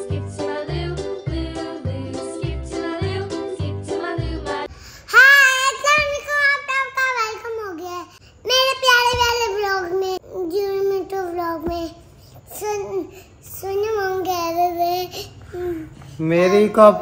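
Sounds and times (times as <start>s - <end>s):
girl singing unaccompanied: 0.0s - 16.8s.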